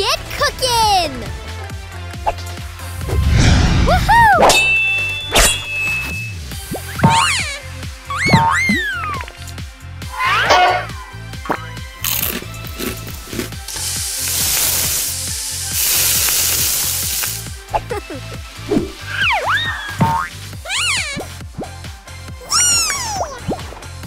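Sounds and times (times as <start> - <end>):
background music: 0.0 - 24.0
squeaky whistle-like glides: 4.5 - 7.3
cartoon frying sizzle effect: 6.4 - 7.6, 12.0 - 21.2.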